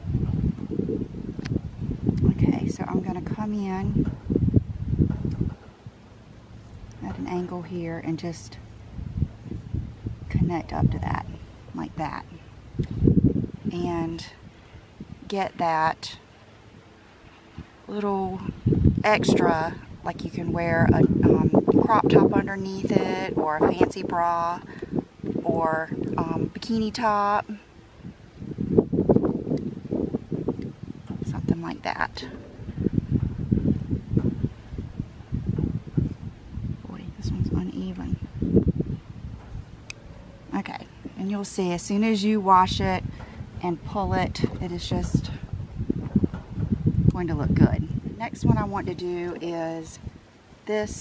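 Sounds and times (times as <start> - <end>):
wind buffeting microphone: 0.0 - 51.0
people talking: 2.2 - 4.0, 7.0 - 8.6, 10.3 - 12.4, 13.7 - 14.4, 15.2 - 16.2, 17.9 - 24.7, 25.4 - 27.6, 31.2 - 32.4, 36.8 - 38.2, 40.5 - 43.0, 43.6 - 45.4, 47.1 - 50.0, 50.7 - 51.0.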